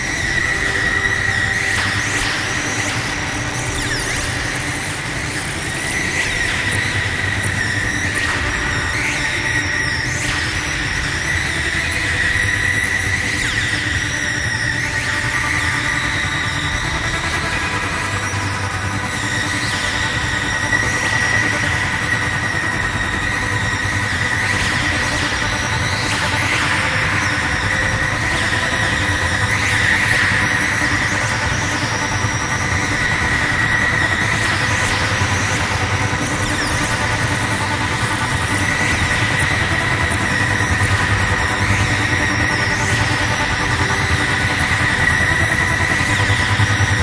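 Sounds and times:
high steady whine: 0.0 - 47.0.

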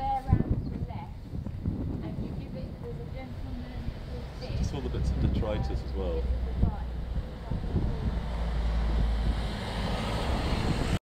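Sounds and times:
traffic noise: 0.0 - 11.0
wind rumble on microphone: 0.0 - 11.0.

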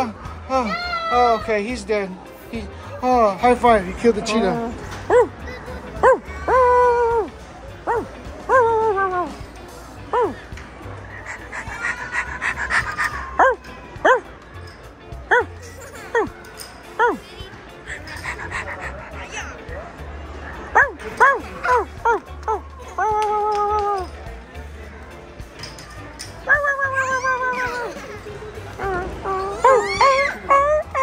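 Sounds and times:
soft background music: 0.0 - 31.0
child's high-pitched squeal: 29.3 - 30.4
high dog yips: 29.3 - 31.0.

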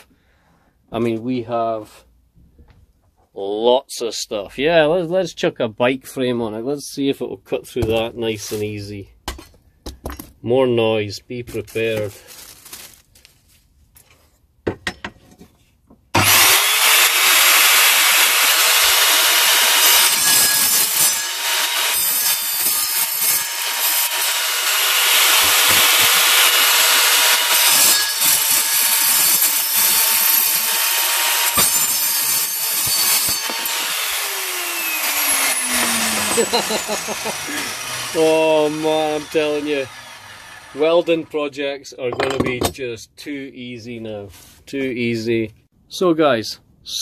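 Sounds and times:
saw motor winding down: 16.2 - 41.4
saw blade cutting metal tube: 16.2 - 41.5.

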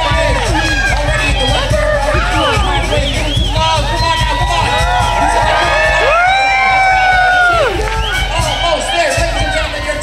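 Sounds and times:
crowd cheering and whooping: 0.0 - 10.0.

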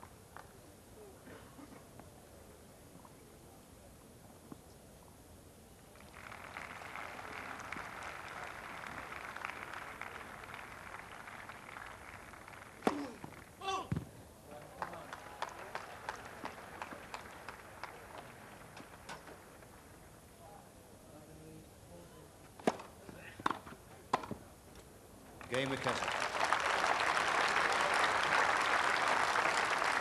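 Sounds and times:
crowd applause: 6.0 - 13.3, 14.5 - 19.6, 25.4 - 30.0.

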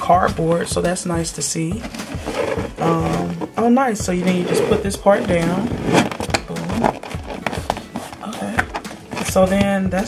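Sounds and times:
cardboard box handling taps and clicks: 6.2 - 9.8.

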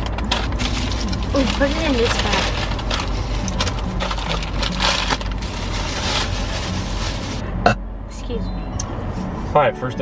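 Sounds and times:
paper bags crinkling: 0.0 - 7.4.

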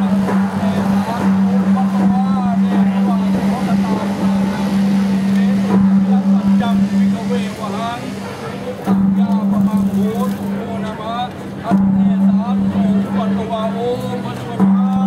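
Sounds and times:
people talking: 0.0 - 15.0
steady low hum: 0.0 - 15.0.

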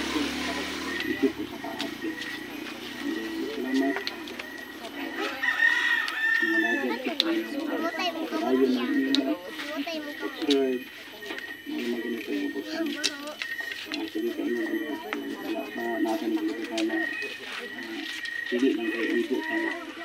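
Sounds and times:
background voices: 0.0 - 20.0
fowl calls: 0.7 - 9.2
rooster crowing: 5.0 - 7.6.

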